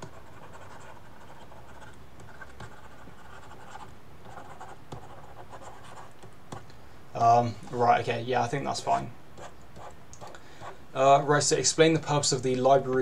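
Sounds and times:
stylus scratching on tablet: 0.0s - 6.6s, 9.4s - 10.8s.

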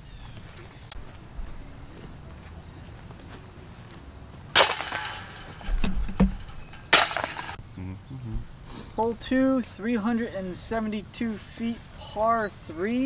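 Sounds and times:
disc golf basket chains rattling: 4.5s - 7.6s.

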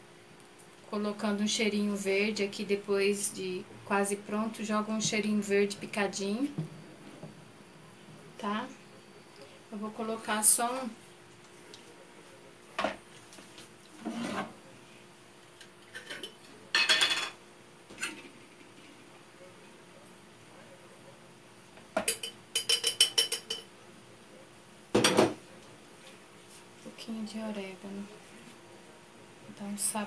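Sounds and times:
kitchen utensils knocking and clinking: 15.9s - 17.4s, 22.0s - 23.7s.

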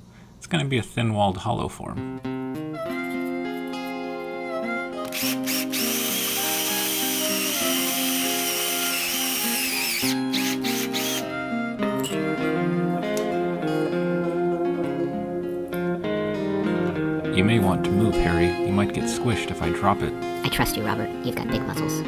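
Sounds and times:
acoustic guitar music: 1.9s - 22.0s
power drill boring into wood: 5.1s - 11.3s.

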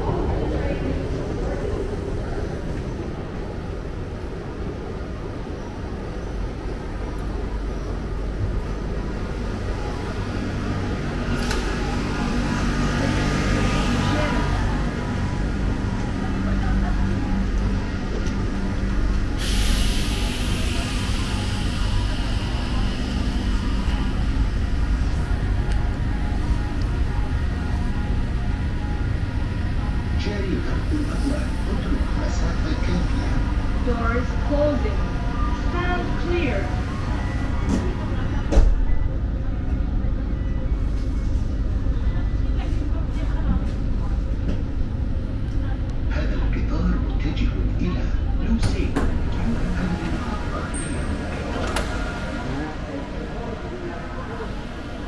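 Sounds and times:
train rumbling: 0.0s - 55.0s
hiss of air: 19.4s - 21.7s.

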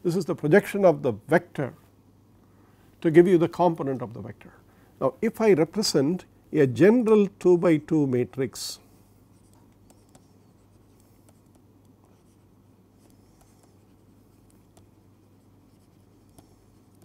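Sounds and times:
steady low hum: 0.0s - 17.0s
stylus scratching on tablet: 9.1s - 17.0s.

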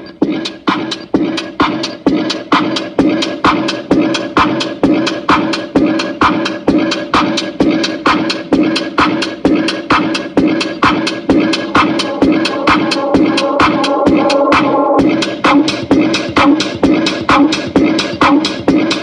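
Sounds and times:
loud music with steady beat: 0.0s - 19.0s.

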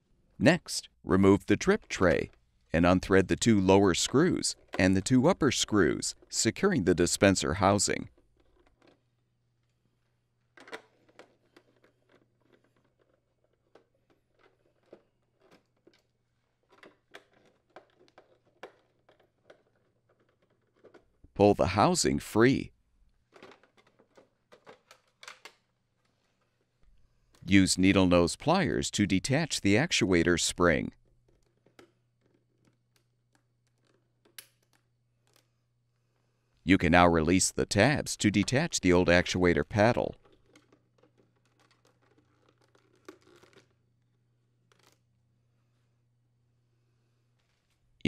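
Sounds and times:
plastic clicks and rattles: 8.1s - 9.8s, 10.5s - 21.2s, 23.2s - 26.6s, 31.1s - 35.5s, 40.2s - 43.8s, 44.7s - 45.0s
plastic rustling: 40.2s - 45.0s.

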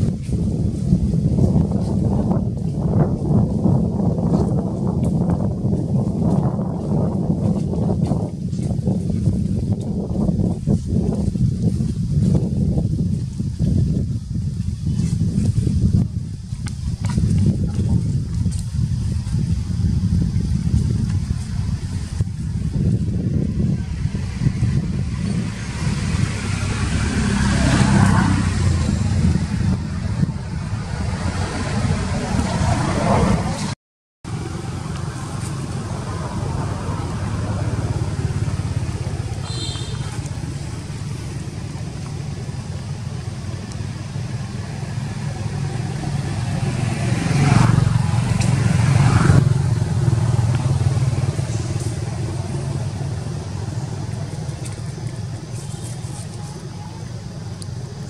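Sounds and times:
low engine drone of vehicles: 18.7s - 58.0s
vehicle passing: 21.6s - 57.7s.

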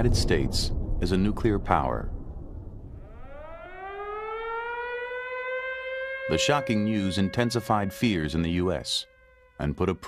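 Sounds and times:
air-raid siren wailing: 3.0s - 10.0s.

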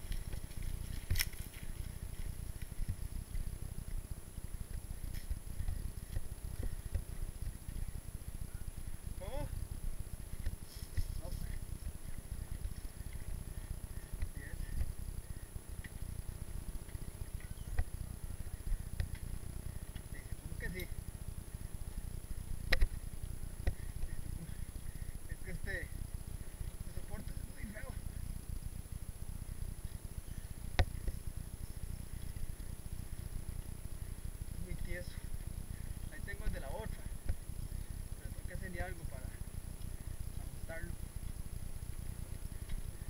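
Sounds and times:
bike bumping over rough dirt: 0.0s - 15.0s
bike trail vibration: 0.0s - 43.0s.

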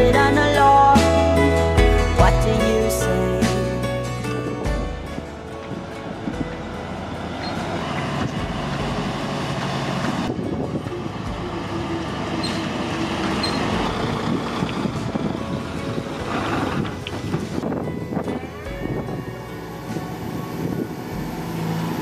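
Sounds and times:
truck diesel engine rumbling: 0.0s - 22.0s.

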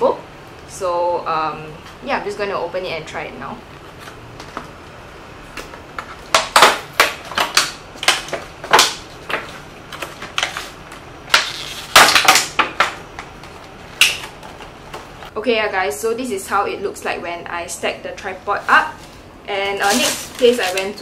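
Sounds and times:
plastic packaging crackling: 6.2s - 14.7s, 18.6s - 21.0s.

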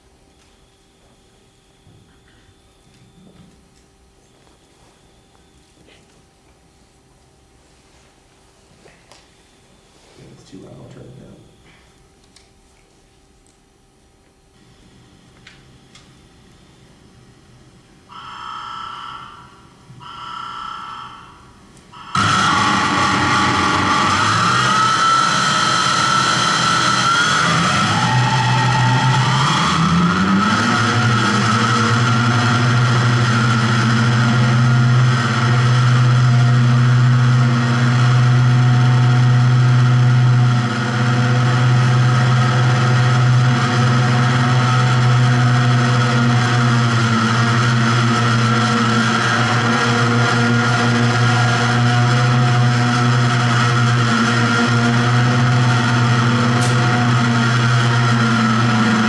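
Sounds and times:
high whine: 0.0s - 59.0s
machine-like droning hum: 0.0s - 59.0s.

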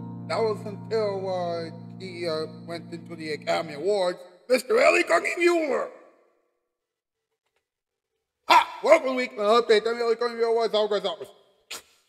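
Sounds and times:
man speaking a greeting: 0.3s - 5.9s, 8.5s - 11.2s
man shouting: 3.4s - 5.9s, 8.5s - 9.4s.

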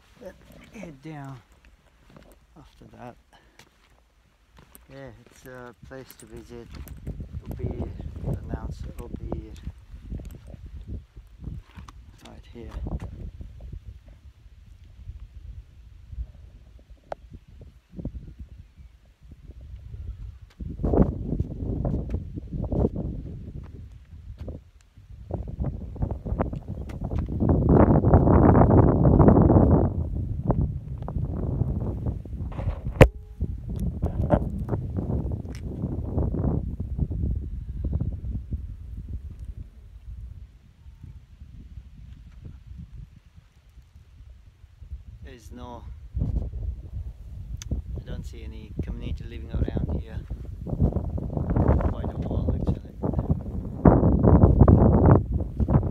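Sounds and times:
wind buffeting microphone: 4.6s - 55.9s.

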